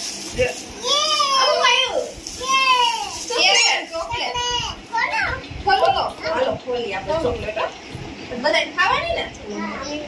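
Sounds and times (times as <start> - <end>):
child talking: 0.8 - 5.6, 9.5 - 10.0.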